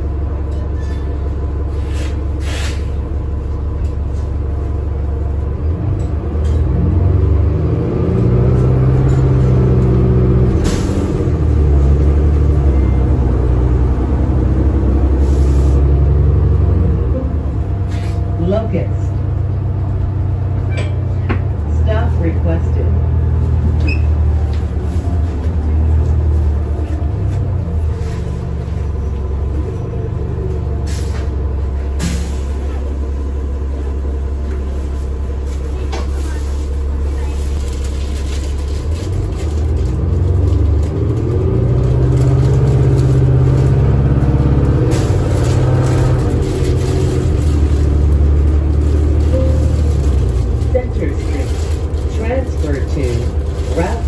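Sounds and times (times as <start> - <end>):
bus engine hum: 0.0 - 54.0.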